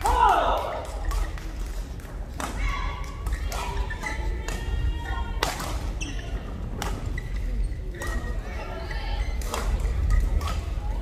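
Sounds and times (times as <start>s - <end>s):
racket hitting shuttlecock: 2.3s - 4.7s, 5.4s - 5.9s, 6.8s - 7.2s, 9.4s - 10.6s
shoes squeaking on court floor: 3.0s - 4.7s, 5.5s - 10.8s.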